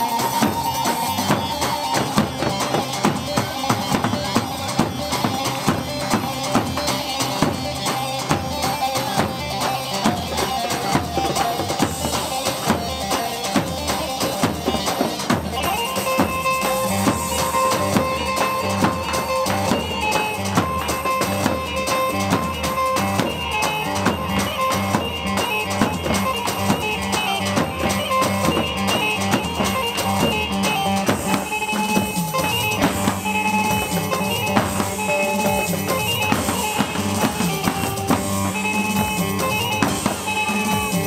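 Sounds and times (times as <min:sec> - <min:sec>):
davul drum beat: 0:00.0 - 0:41.0
held melody line: 0:00.0 - 0:41.0
live band playing dance music: 0:00.0 - 0:41.0.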